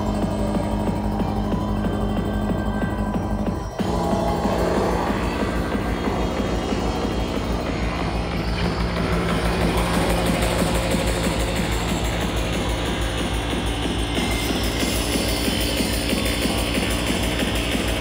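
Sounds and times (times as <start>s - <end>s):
loud electronic dance music: 0.0s - 18.0s
pulsing bass beat: 0.0s - 18.0s.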